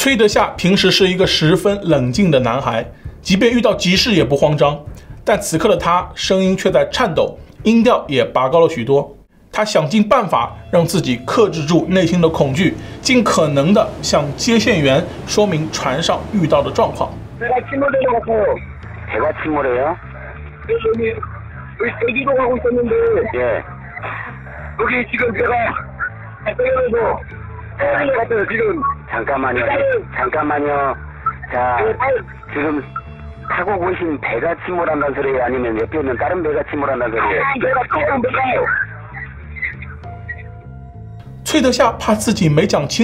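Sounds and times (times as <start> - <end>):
low background music: 0.0 - 43.0
person speaking: 9.8 - 18.1
music with repeating bass: 10.6 - 26.4.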